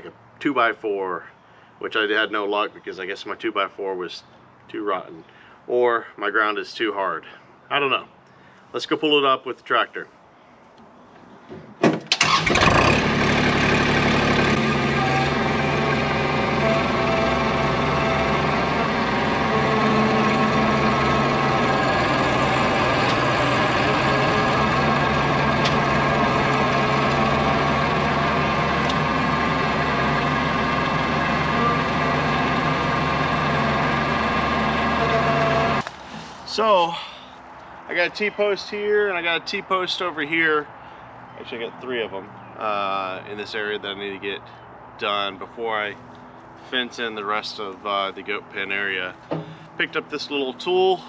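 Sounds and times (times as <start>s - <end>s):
tractor diesel engine starting: 11.9s - 36.9s.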